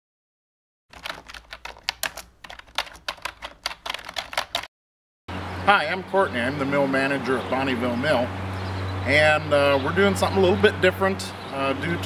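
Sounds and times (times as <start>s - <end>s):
keyboard keys clacking: 0.9s - 4.7s.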